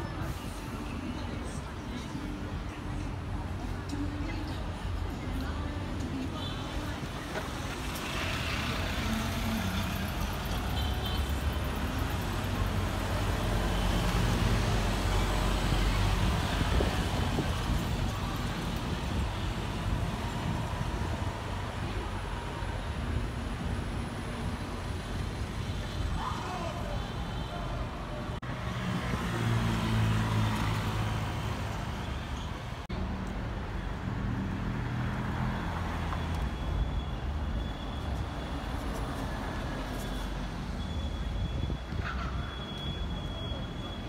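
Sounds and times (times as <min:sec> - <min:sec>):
city traffic driving past: 0:00.0 - 0:44.0.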